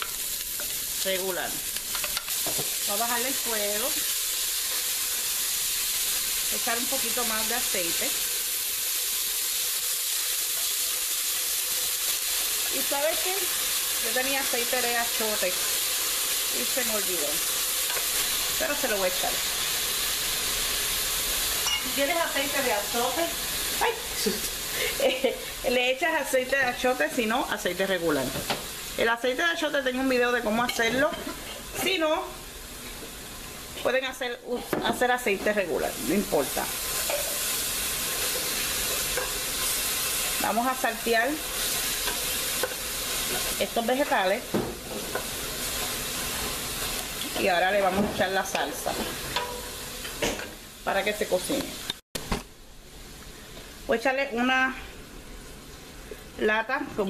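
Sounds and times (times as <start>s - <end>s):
sofrito sizzling in hot oil: 0.0s - 57.0s.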